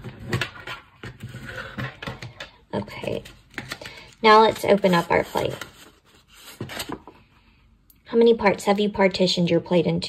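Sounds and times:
paper plate rustling: 0.0s - 7.3s.

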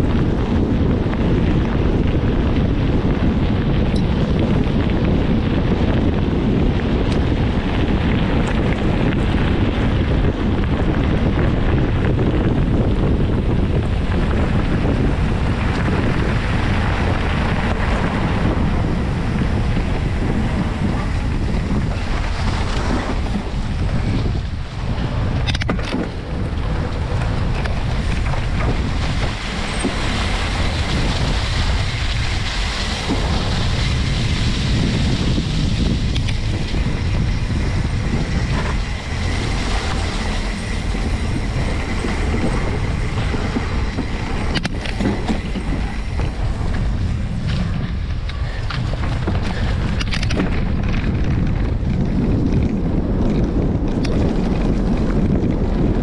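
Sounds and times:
bicycle tyres on gravel: 0.0s - 56.0s
wind buffeting microphone: 0.0s - 56.0s.

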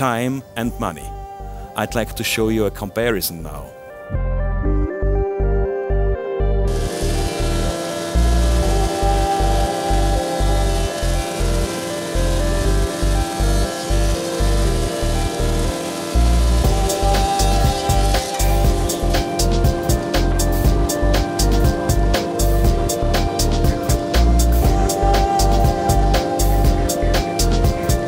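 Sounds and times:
background music with steady beat: 0.0s - 28.0s
jointer-planer humming: 6.7s - 28.0s.

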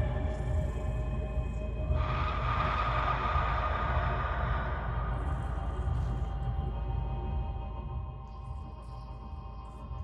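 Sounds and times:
rumbling noisy drone: 1.8s - 7.5s.

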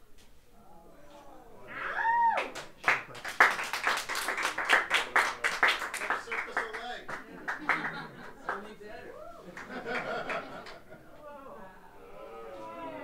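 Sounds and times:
person whooping: 1.7s - 2.6s, 9.1s - 9.5s
audience clapping and cheering: 2.0s - 8.7s.

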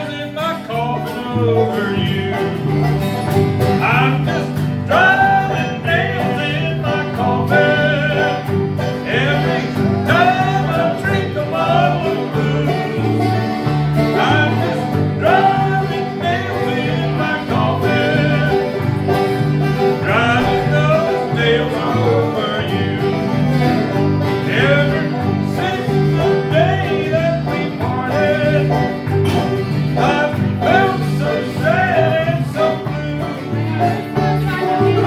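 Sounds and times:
acoustic guitars picking: 0.0s - 35.0s
banjo: 0.0s - 35.0s
mandolin: 0.0s - 35.0s.

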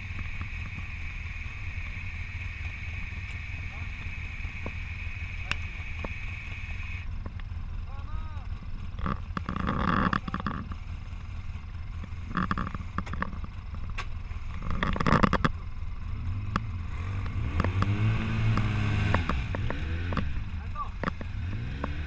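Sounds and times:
engine revving: 0.0s - 22.0s.

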